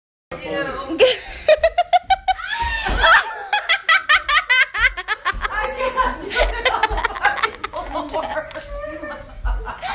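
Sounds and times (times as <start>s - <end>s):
people laughing hard: 1.0s - 9.9s.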